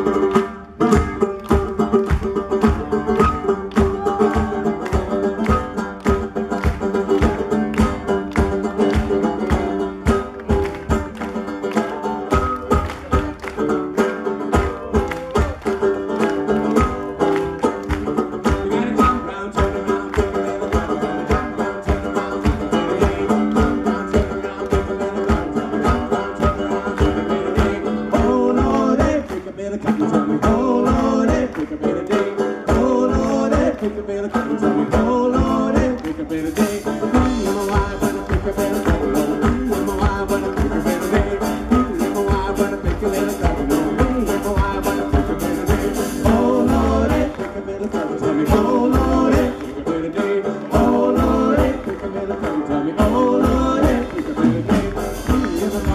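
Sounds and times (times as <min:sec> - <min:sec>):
live folk band playing: 0:00.0 - 0:55.9.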